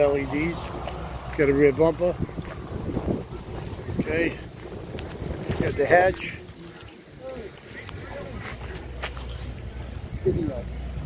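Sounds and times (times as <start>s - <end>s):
wind buffeting microphone: 0.0s - 9.0s.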